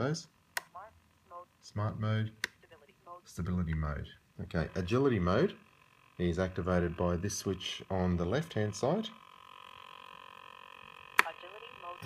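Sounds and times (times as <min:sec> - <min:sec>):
faint electronic hum: 0:00.0 - 0:12.0.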